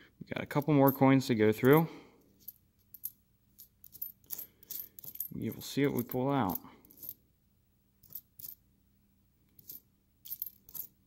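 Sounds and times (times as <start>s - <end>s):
coins clinking: 2.4s - 7.2s, 8.0s - 8.6s, 9.6s - 11.0s.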